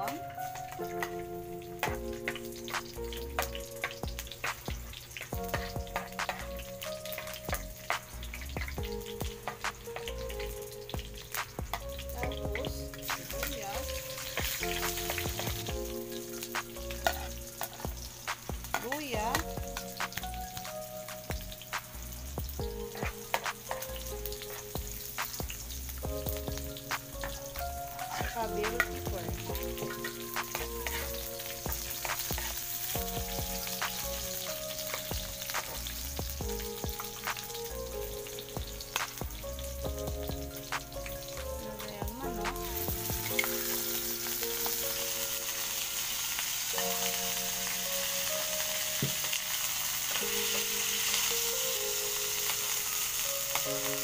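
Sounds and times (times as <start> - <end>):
food sizzling in hot oil: 0.0 - 54.0.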